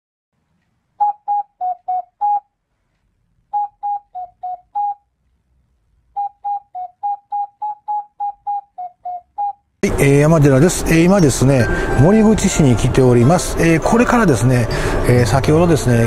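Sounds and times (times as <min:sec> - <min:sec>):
intro jingle of short notes: 0:09.8 - 0:16.0.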